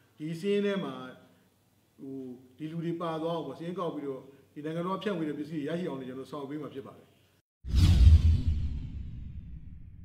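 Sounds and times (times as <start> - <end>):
whoosh with deep rumble: 7.7 - 10.0.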